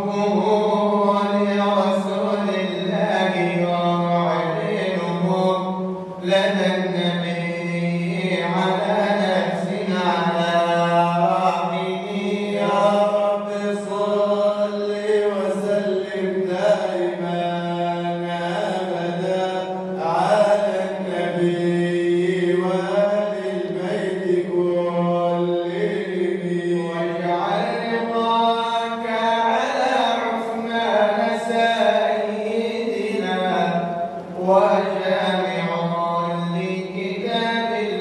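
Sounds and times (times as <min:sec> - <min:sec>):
man chanting: 0:00.0 - 0:38.0.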